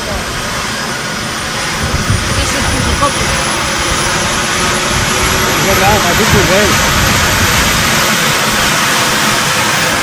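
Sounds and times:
helicopter turbine and rotor: 0:00.0 - 0:10.0
high turbine whine: 0:00.0 - 0:10.0.

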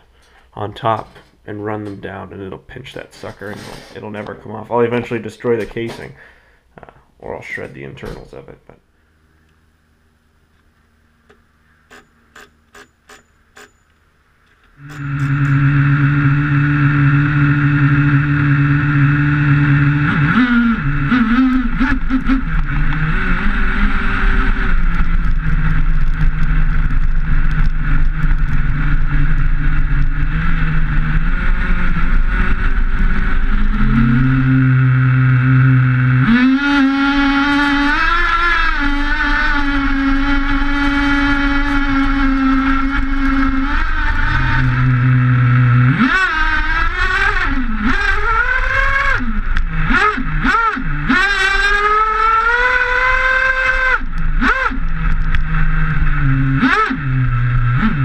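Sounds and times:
small two-stroke engine revving: 0:14.8 - 0:58.0.

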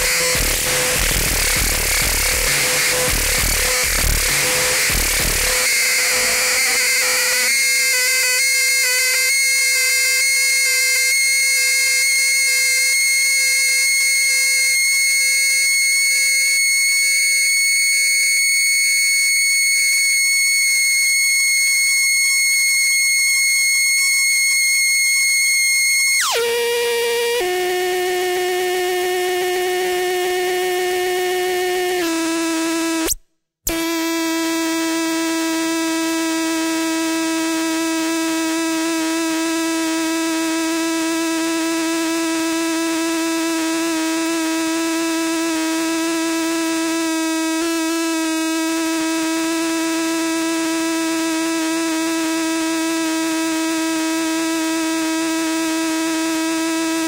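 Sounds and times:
low electronic drone: 0:00.0 - 0:09.2
high electronic tone: 0:00.0 - 0:10.9, 0:23.4 - 0:31.6.

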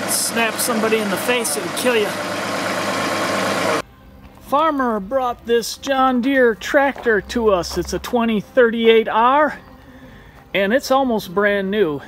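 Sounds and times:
tractor diesel engine idling: 0:00.0 - 0:03.8.

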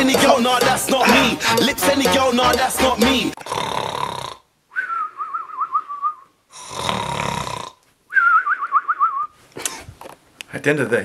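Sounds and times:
cartoon snoring with whistle: 0:03.4 - 0:05.5, 0:06.5 - 0:07.8.

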